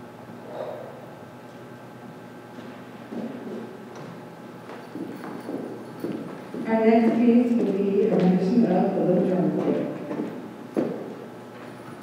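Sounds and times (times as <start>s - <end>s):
large hall background noise: 0.0s - 12.0s
footsteps on hollow stage floor: 2.4s - 12.0s.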